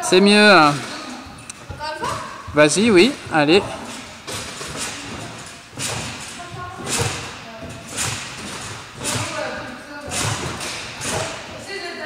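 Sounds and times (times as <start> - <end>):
trampoline springs thumping: 0.4 - 12.0.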